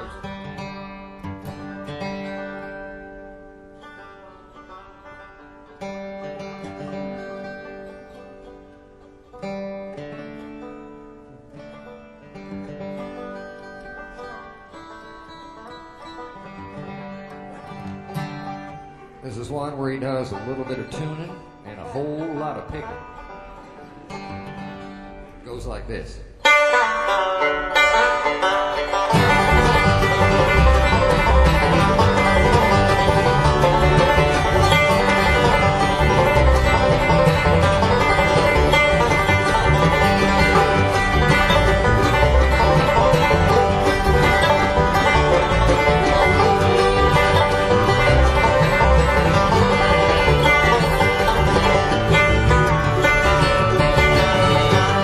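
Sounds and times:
banjo: 0:00.0 - 0:55.0
bluegrass band playing: 0:00.0 - 0:55.0.

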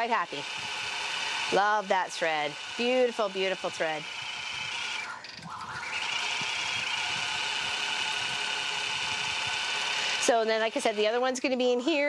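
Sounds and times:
quilting machine needle whirring: 0:00.0 - 0:11.6.

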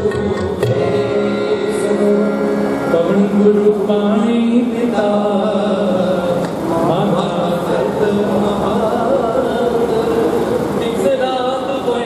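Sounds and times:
harmonium reed notes: 0:00.0 - 0:12.0.

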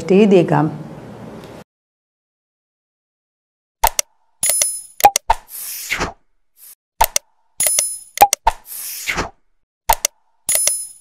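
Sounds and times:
sharp clicks: 0:03.8 - 0:05.4, 0:07.0 - 0:08.6, 0:09.9 - 0:10.8.

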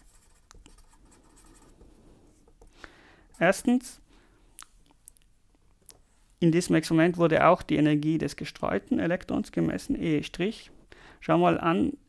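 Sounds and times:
marker pen scratching on surface: 0:00.0 - 0:02.6, 0:03.3 - 0:03.8.

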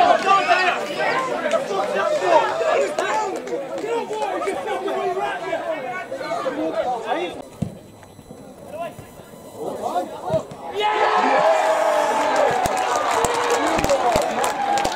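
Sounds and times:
crowd of voices talking and calling: 0:00.0 - 0:14.9.

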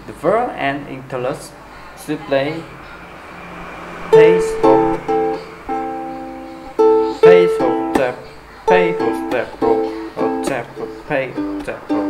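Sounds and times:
ukulele strumming: 0:04.1 - 0:12.0.

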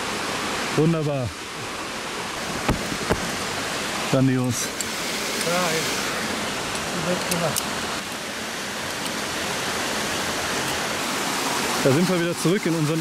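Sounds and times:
stream rushing over rocks: 0:00.0 - 0:13.0.

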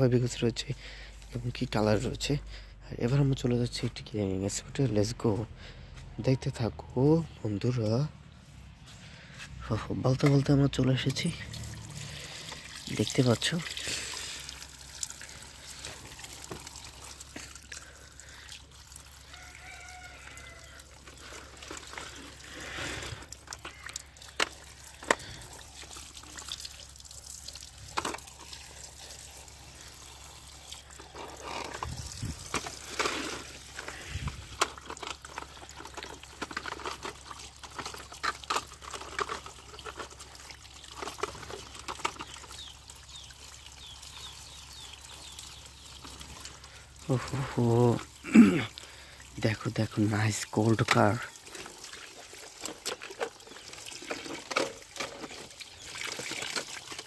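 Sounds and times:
tap water running and splashing: 0:10.1 - 0:57.0
plastic toys clicking and knocking: 0:27.9 - 0:28.2, 0:32.5 - 0:40.3, 0:40.9 - 0:42.6.

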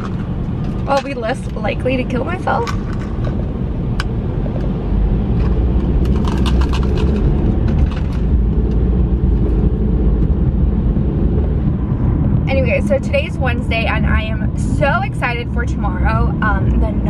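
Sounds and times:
car cabin road and engine rumble: 0:00.0 - 0:17.0.

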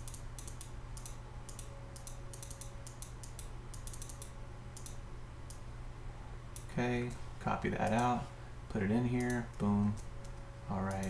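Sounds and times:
computer keyboard keystrokes: 0:00.0 - 0:05.0
mouse clicks: 0:00.0 - 0:05.6
low steady hum: 0:00.0 - 0:11.0.

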